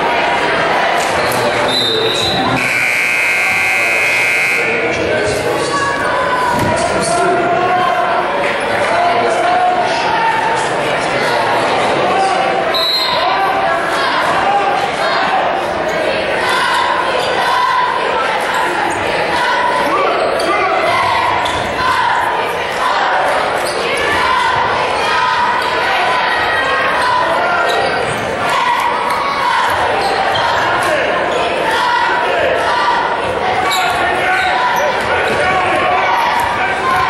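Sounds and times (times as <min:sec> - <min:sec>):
indistinct crowd voices: 0:00.0 - 0:37.0.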